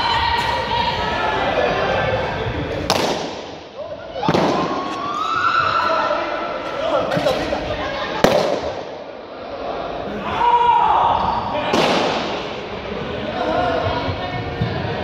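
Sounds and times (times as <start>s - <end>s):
balloons bursting: 2.9s - 5.0s, 8.2s - 9.0s, 11.7s - 12.5s.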